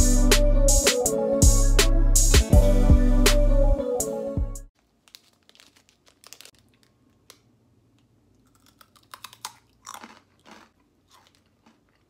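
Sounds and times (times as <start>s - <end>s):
person chewing crunchy cracker: 4.9s - 7.4s, 8.3s - 12.0s.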